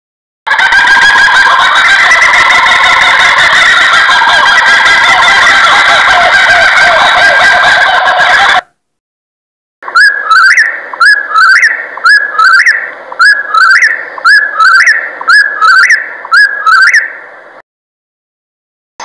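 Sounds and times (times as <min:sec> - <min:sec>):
kookaburra laughing call: 0:00.5 - 0:08.7, 0:09.9 - 0:17.1.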